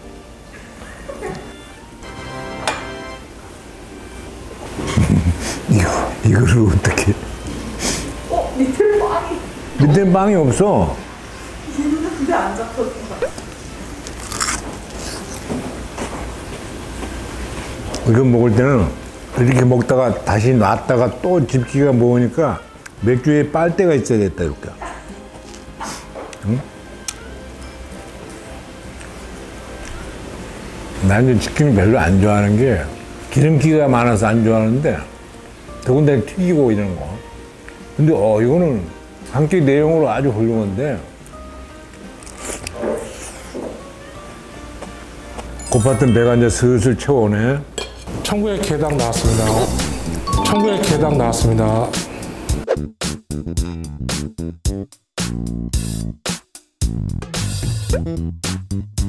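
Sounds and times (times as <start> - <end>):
crunching while chewing: 14.0 - 15.5, 42.2 - 43.6
crunchy bite into burger: 14.1 - 15.5.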